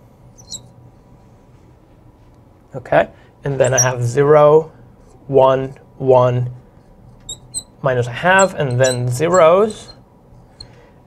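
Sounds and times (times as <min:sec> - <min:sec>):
felt marker squeaking on glass: 0:00.4 - 0:00.7, 0:03.6 - 0:04.0, 0:07.2 - 0:10.7.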